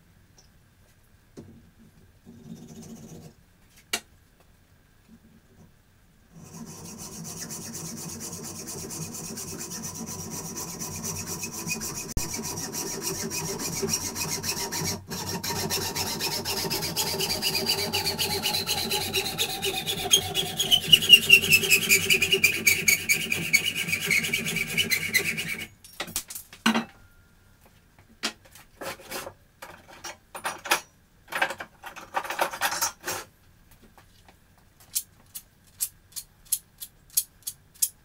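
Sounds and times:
metal tube worked in vise: 6.3 - 25.7.

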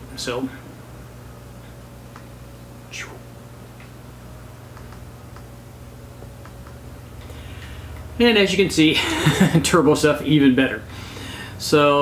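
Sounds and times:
room hum: 0.0 - 12.0
computer mouse clicks: 4.7 - 5.5, 6.2 - 6.8.

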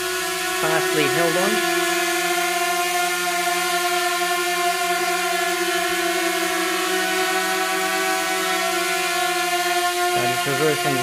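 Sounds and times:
drone propellers buzzing: 0.0 - 11.0.

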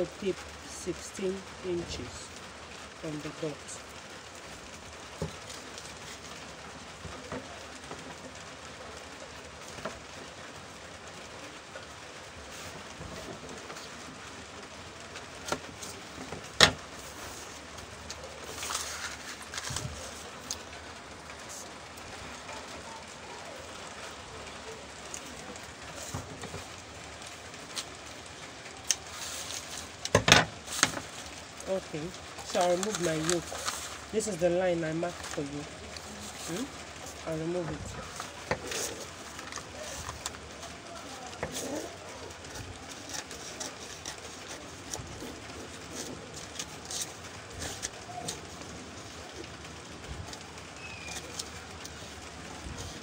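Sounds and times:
paper crackling: 0.0 - 53.0
steady low hiss: 0.0 - 53.0.

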